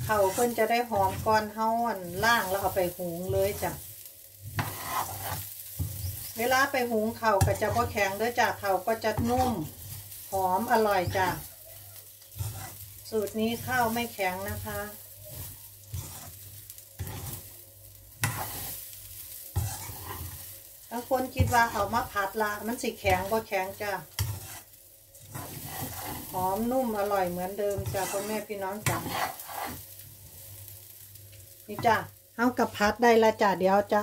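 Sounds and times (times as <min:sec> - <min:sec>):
spatula scraping pan: 0:00.0 - 0:30.5
faint sizzle in pan: 0:00.0 - 0:34.0.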